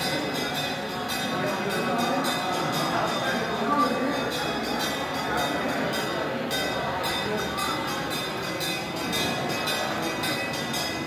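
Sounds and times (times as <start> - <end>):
temple ritual music: 0.0 - 11.0.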